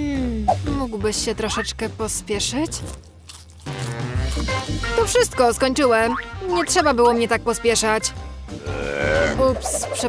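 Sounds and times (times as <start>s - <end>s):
background music: 0.0s - 10.0s
popcorn crunching: 2.6s - 4.9s.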